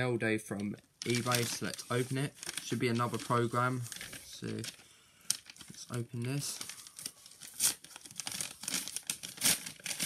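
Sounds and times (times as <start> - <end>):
packaging being torn open: 1.0 - 5.7, 6.4 - 10.0.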